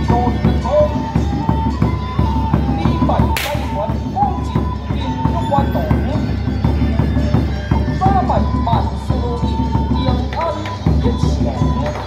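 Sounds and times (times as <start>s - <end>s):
drumming and music: 0.0s - 12.0s.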